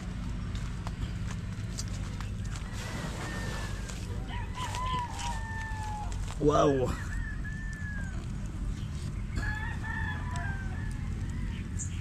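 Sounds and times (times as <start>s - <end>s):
rooster crowing: 2.7s - 8.6s, 9.3s - 11.9s.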